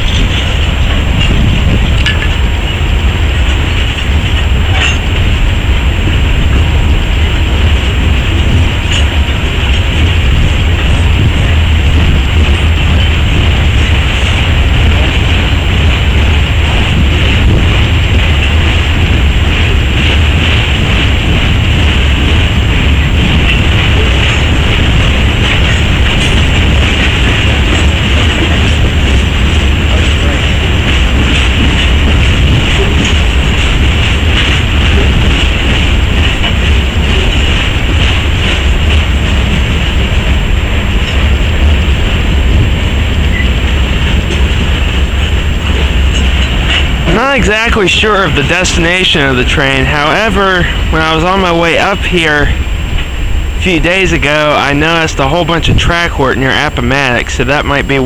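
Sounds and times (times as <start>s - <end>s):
train wheels rumbling on rail: 0.0s - 58.0s.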